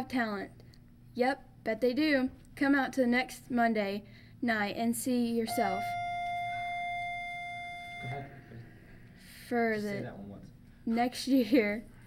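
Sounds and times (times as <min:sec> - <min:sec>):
steady mid-pitched tone: 0:05.5 - 0:08.6.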